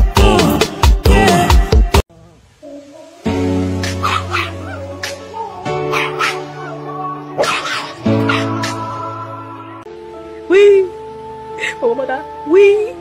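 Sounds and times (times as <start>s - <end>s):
music of long held chords: 2.6s - 13.0s
puppy yapping and barking: 3.9s - 4.9s, 5.8s - 6.8s, 7.4s - 8.8s.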